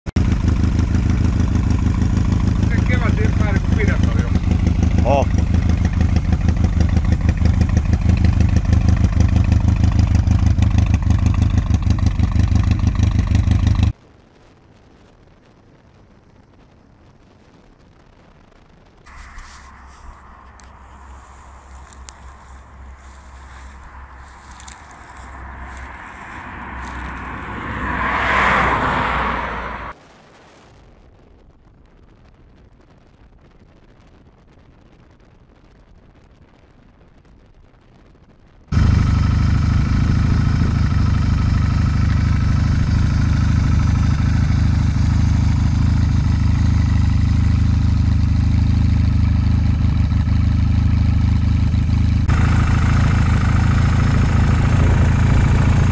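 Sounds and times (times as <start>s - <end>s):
motorcycle engine idling: 0.2s - 13.9s, 19.1s - 27.6s, 38.8s - 55.9s
rushing sound: 19.1s - 30.0s, 52.3s - 55.9s.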